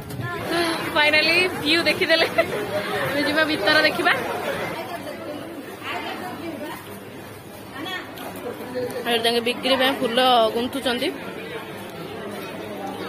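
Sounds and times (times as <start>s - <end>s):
people talking: 0.0s - 7.0s.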